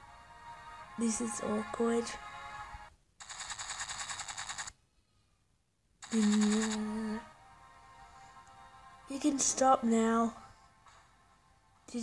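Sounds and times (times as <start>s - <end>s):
soundtrack music: 0.0s - 2.9s, 6.7s - 12.0s
rapid rattling burst: 3.2s - 4.8s, 6.0s - 6.8s.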